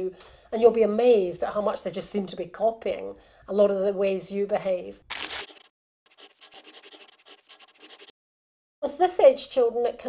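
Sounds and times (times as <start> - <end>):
paper swish: 5.1 - 8.1
quick scratching strokes: 5.1 - 8.2.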